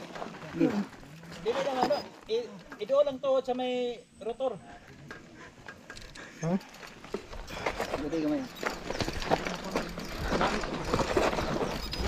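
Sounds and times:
bike tyres crunching over stones: 0.0 - 3.1, 6.7 - 12.0
bike rattling: 0.0 - 3.5, 4.9 - 12.0.

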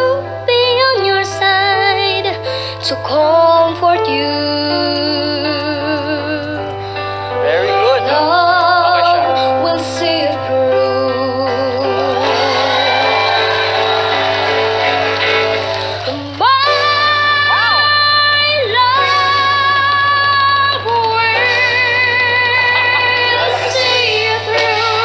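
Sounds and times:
boy singing a ballad: 0.0 - 12.7, 16.1 - 25.0
band accompaniment: 11.9 - 25.0.

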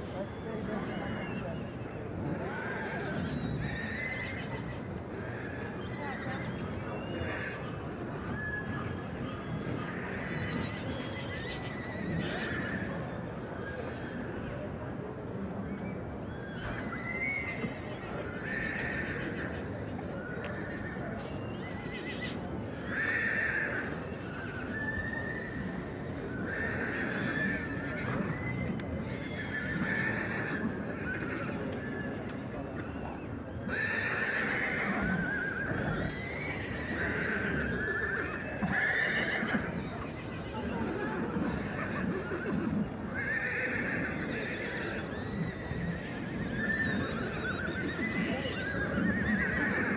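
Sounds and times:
steady background noise: 0.0 - 49.9
horses whinnying: 0.4 - 13.0, 16.5 - 21.0, 21.6 - 32.1, 32.8 - 49.9.

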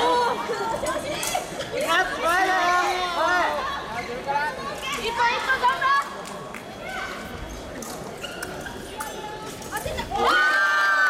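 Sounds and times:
loud shout in a hall: 10.0 - 11.0.

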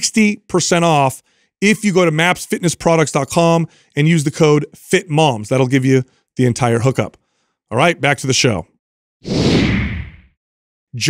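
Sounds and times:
whoosh sound effect: 9.2 - 10.3.

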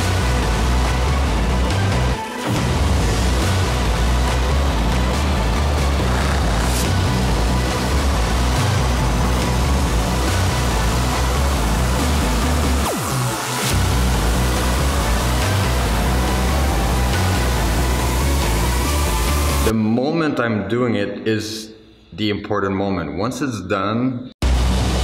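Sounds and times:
electronic music with pulsing bass: 0.0 - 19.8.

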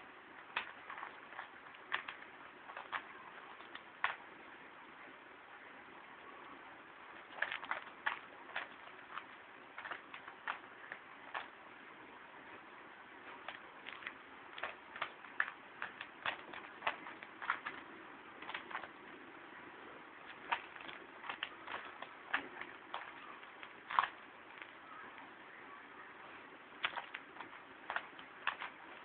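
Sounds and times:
puzzle cube plastic clicks: 0.4 - 4.2, 7.2 - 11.6, 13.3 - 19.2, 20.2 - 25.3, 26.7 - 29.0.

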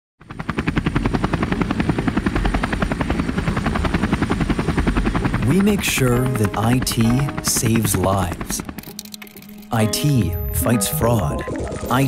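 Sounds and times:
helicopter rotor chopping: 0.2 - 12.0.

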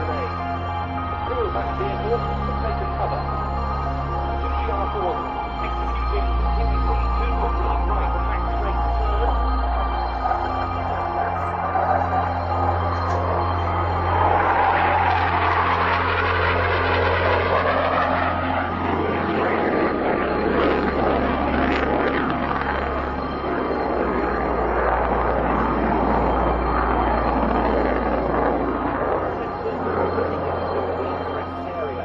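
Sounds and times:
jet engine rushing: 0.0 - 32.0
low steady hum: 0.0 - 32.0.

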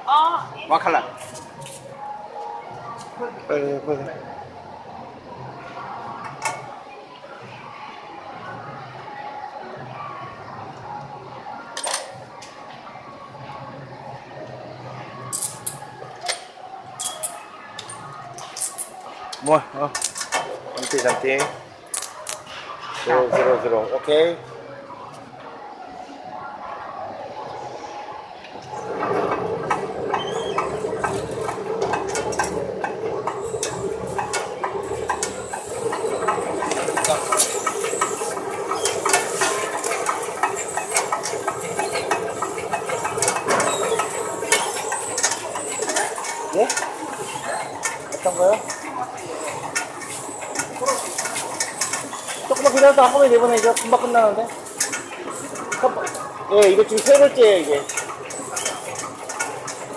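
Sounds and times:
machine hum: 28.5 - 59.9.

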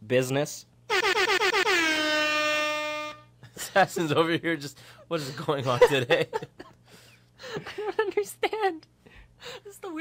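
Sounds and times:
air horn blasts: 0.9 - 3.4.

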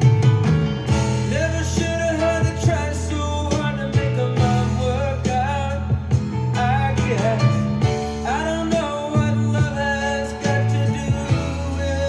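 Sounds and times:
bass guitar sustained low notes: 0.0 - 12.0
drums: 0.0 - 12.0
piano: 0.0 - 12.0
male lead vocal: 1.2 - 12.0.

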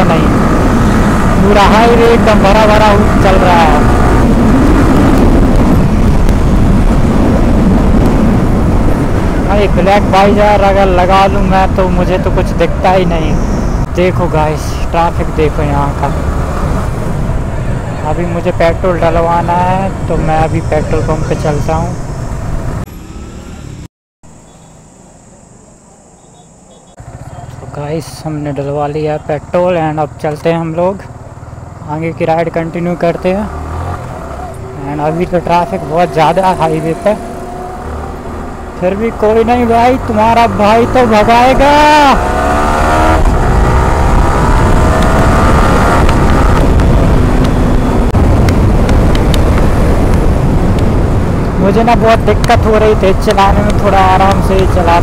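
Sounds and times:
wind rushing over microphone: 0.0 - 22.9, 32.8 - 55.0
motorcycle engine: 0.0 - 55.0.

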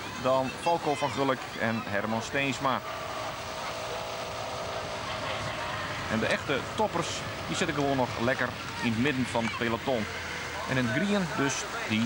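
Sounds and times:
road and tyre noise: 0.0 - 12.0
vehicle engine hum: 0.0 - 12.0.

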